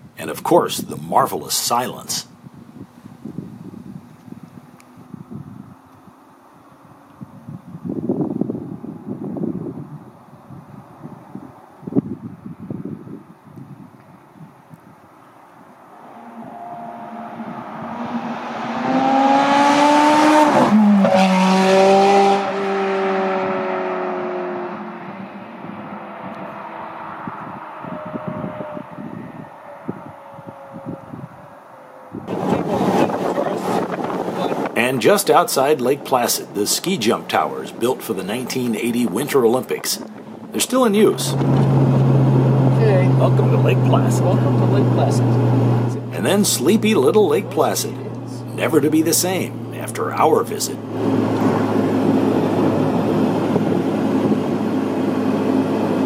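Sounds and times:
sports car engine passing by: 15.6s - 34.8s, 38.2s - 56.0s.

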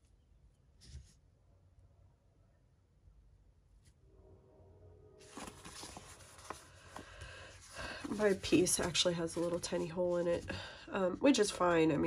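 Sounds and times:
paper rustling: 5.2s - 10.7s.

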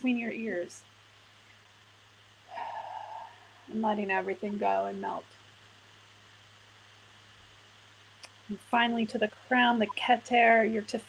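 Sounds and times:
faint steady hum: 0.0s - 11.0s
person breathing in: 2.5s - 3.7s.

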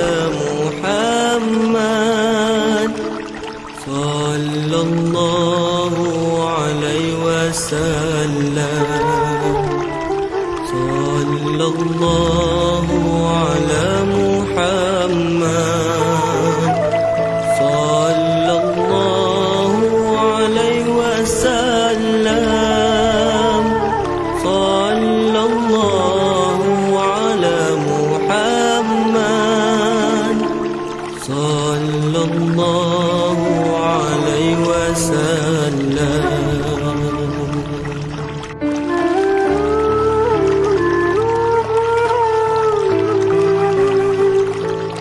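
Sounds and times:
person singing devotional song: 0.0s - 39.9s
low sustained accompaniment notes: 0.0s - 45.0s.

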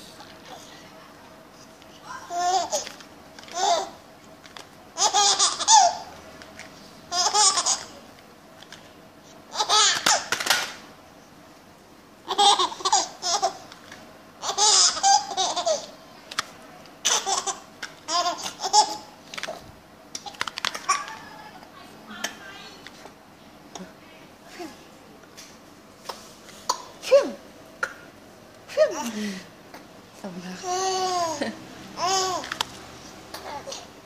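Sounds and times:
baby laughing: 2.3s - 4.0s, 5.0s - 6.1s, 7.1s - 8.0s, 9.5s - 10.3s, 12.2s - 13.7s, 14.4s - 16.0s, 17.0s - 19.1s, 30.6s - 32.5s.

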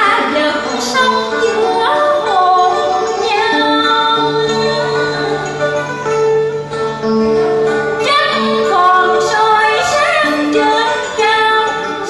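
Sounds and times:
woman singing: 0.0s - 6.0s, 8.0s - 12.0s
held instrumental notes: 0.0s - 12.0s.

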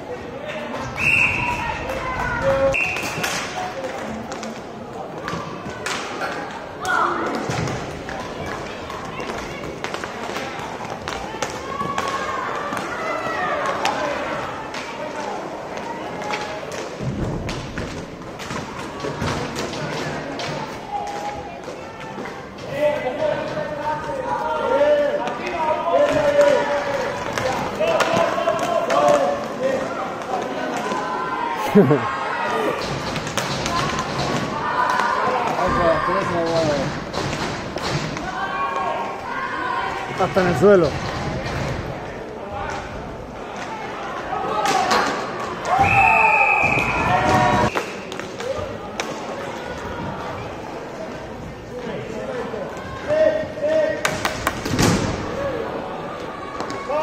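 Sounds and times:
spectators talking and calling out: 18.0s - 57.0s.

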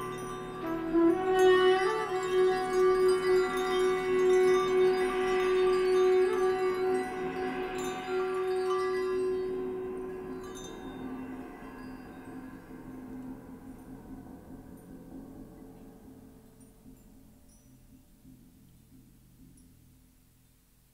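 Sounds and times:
long held note: 0.0s - 13.7s
chimes and small bells ringing: 0.0s - 15.4s, 16.4s - 18.9s.

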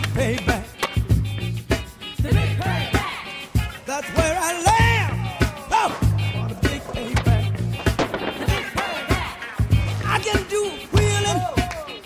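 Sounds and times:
skateboard clacks: 0.0s - 1.1s, 3.7s - 12.0s
music with bass and singing: 0.0s - 12.0s
skateboard wheels rolling: 2.0s - 12.0s.

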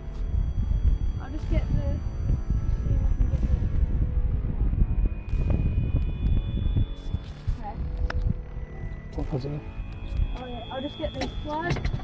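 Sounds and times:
wind buffeting microphone: 0.2s - 9.0s.

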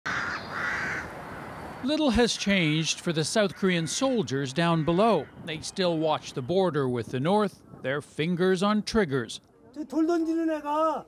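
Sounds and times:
bird calling: 0.1s - 6.8s.

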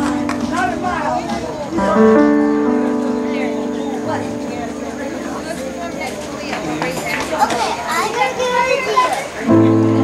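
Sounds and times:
children talking and playing: 0.0s - 10.0s
people chattering: 0.0s - 10.0s.

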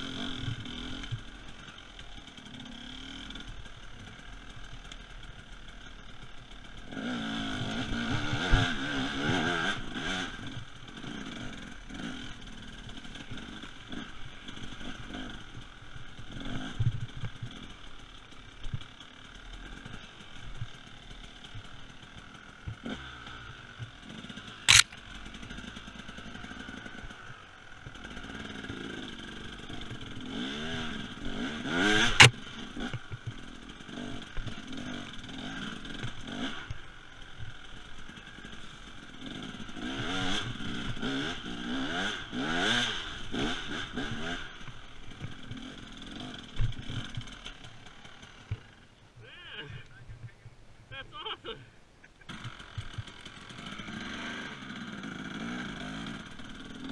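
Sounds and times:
two-stroke engine revving: 0.0s - 48.8s, 52.3s - 56.9s.

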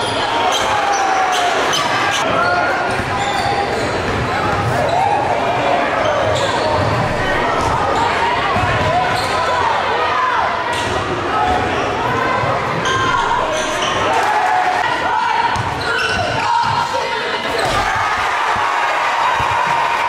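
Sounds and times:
voices echoing in hall: 0.0s - 20.0s.

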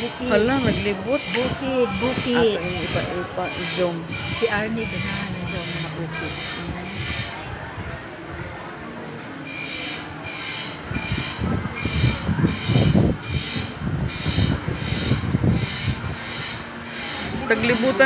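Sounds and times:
rhythmic rasping scrape: 0.0s - 7.4s, 9.4s - 18.0s
heavy low rumbling: 0.0s - 9.3s, 10.8s - 18.0s.

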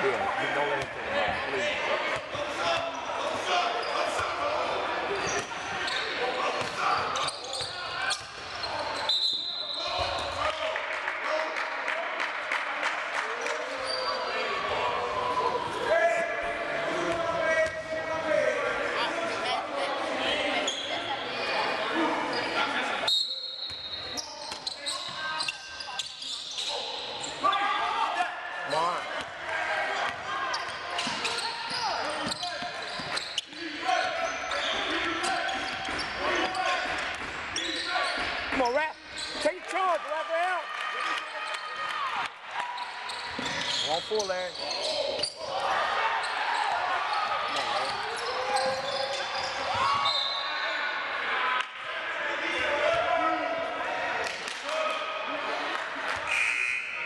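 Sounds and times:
sneakers squeaking: 0.8s - 10.6s, 13.6s - 15.9s, 20.4s - 27.6s, 29.0s - 39.8s, 42.6s - 50.8s.

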